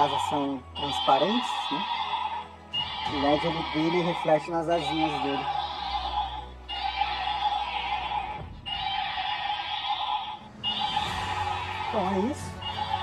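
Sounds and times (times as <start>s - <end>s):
toy electronic sound effect: 0.0s - 4.0s, 4.8s - 13.0s
toy motor humming: 0.0s - 13.0s.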